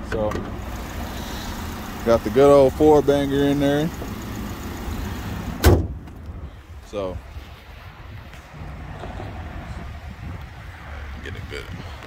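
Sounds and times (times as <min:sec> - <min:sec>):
car hood slamming: 0:05.5 - 0:06.2.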